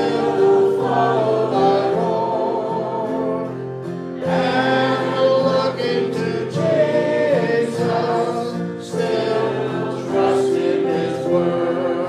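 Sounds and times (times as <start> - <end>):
congregation singing: 0.0 - 12.0
instrumental accompaniment: 0.0 - 12.0.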